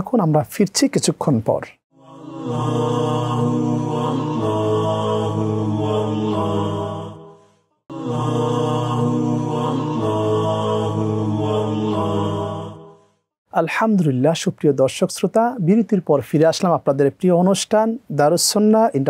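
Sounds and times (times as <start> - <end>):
wordless chanted melody: 2.0 - 13.0.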